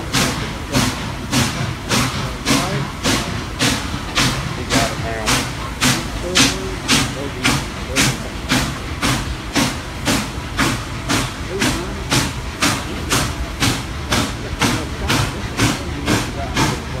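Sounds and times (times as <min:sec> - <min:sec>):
steam locomotive exhaust beats: 0:00.0 - 0:17.0.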